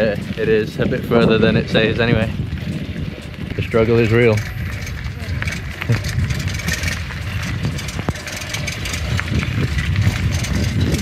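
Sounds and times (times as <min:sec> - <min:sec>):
bicycle rattling over gravel: 0:00.0 - 0:11.0.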